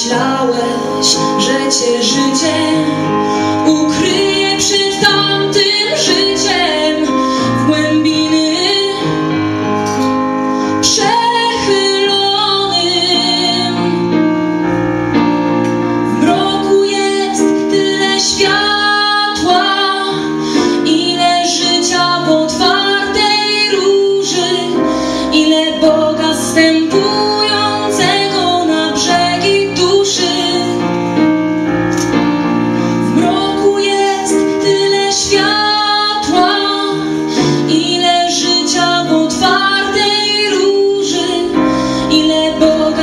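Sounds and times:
woman singing: 0.0s - 10.0s, 10.7s - 14.3s, 16.1s - 31.0s, 33.0s - 43.0s
piano: 0.0s - 43.0s.

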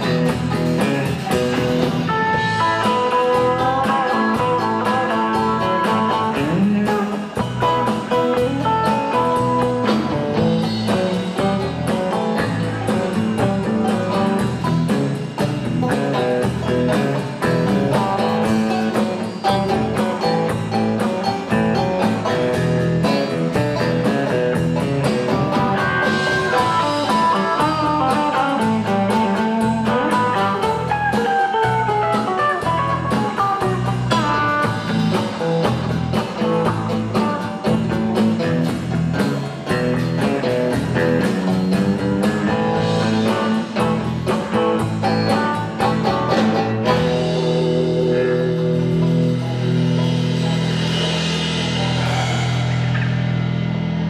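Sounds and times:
country-rock band playing: 0.0s - 54.0s
lead guitar bending in pitch: 39.3s - 54.0s.

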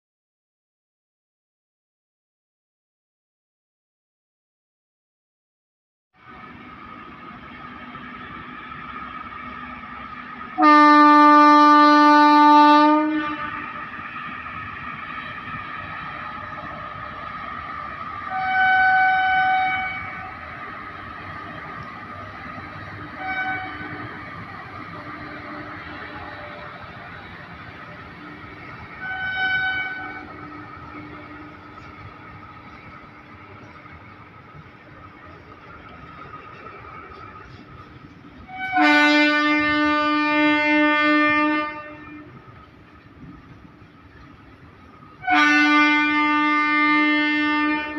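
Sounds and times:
freight train wheels rumbling: 6.2s - 47.9s
higher-pitched horn: 10.6s - 13.7s, 28.9s - 32.0s, 38.5s - 42.4s
loud train horn blast: 10.6s - 13.8s, 18.3s - 20.4s, 23.1s - 24.1s, 28.9s - 32.2s, 38.5s - 42.4s, 45.2s - 47.9s.

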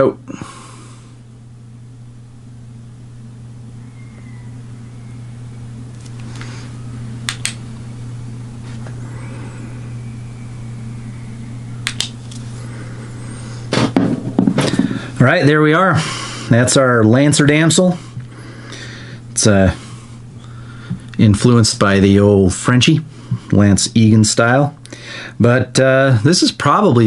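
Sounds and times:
low electrical hum: 0.0s - 27.0s
light switch clicking: 7.3s - 7.6s, 11.8s - 12.2s
handling noise: 13.7s - 15.0s.

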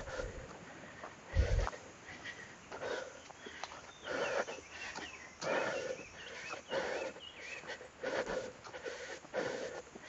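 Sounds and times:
faint bird calls: 0.0s - 10.0s
person breathing heavily: 0.0s - 10.0s.

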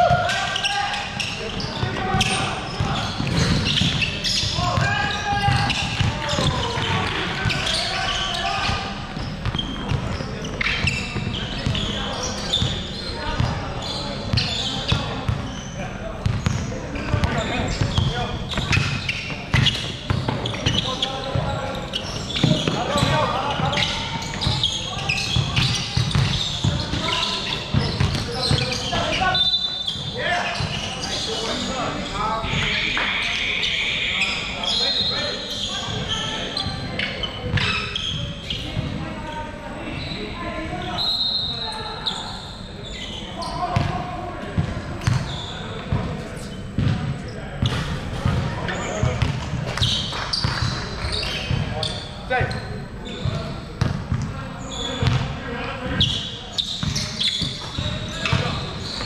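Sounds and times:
players calling: 0.0s - 44.4s, 54.5s - 59.0s
basketball bouncing on hardwood: 49.1s - 49.4s
short high squeaks: 56.0s - 59.0s.

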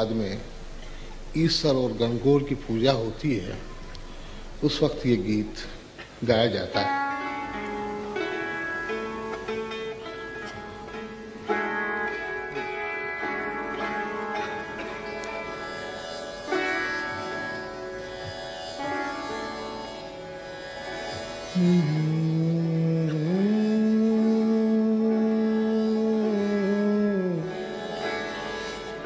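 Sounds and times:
sarangi slow melody: 0.0s - 29.0s.

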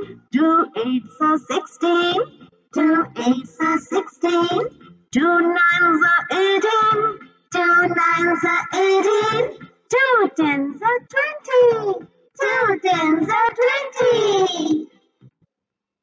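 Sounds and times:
child singing a chant-song: 0.0s - 14.9s.

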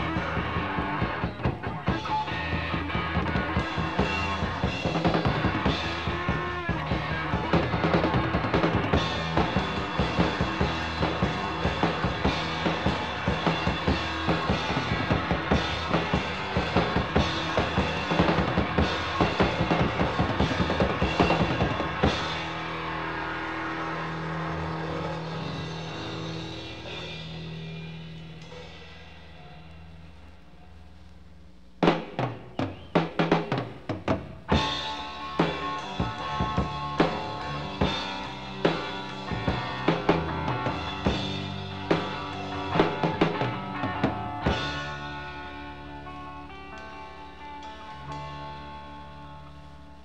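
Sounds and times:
live rock band playing: 0.0s - 30.0s, 31.8s - 50.0s.

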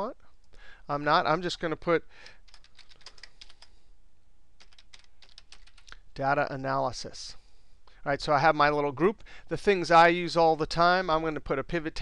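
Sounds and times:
typing on computer keyboard: 2.2s - 3.7s, 4.6s - 5.9s.

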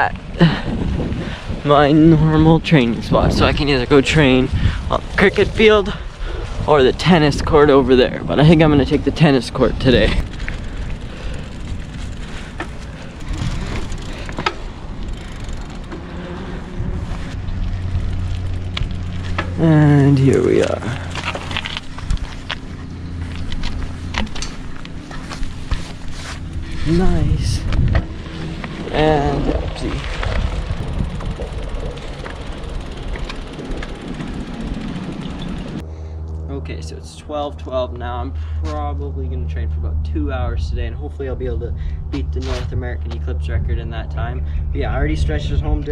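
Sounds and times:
bike tyres rumbling: 0.0s - 45.9s
steady low hum: 0.0s - 45.9s
bike frame clicks and rattles: 8.6s - 36.4s.

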